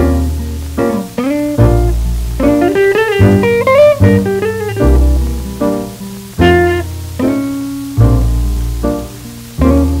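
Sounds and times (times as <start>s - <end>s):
instrumental ballad on old record: 0.0s - 10.0s.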